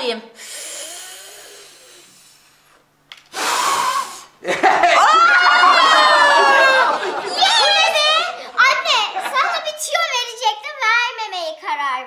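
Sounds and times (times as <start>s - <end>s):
woman blowing at candles: 0.4s - 4.4s
high-pitched cry with laughter: 4.6s - 9.6s.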